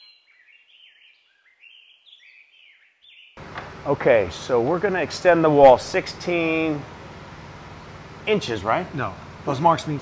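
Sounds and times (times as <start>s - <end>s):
songbird chirping: 0.0s - 3.8s.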